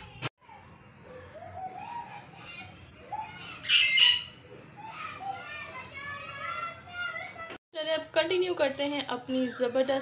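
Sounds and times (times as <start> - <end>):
shrill squawk: 3.2 - 4.4.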